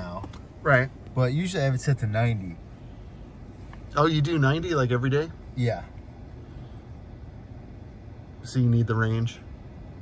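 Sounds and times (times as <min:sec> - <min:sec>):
low hum and hiss in car cabin: 0:00.0 - 0:10.0.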